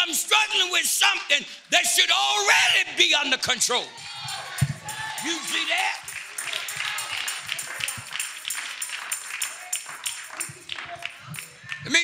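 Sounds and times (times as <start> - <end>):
church music with steady beat: 0.0 - 12.0.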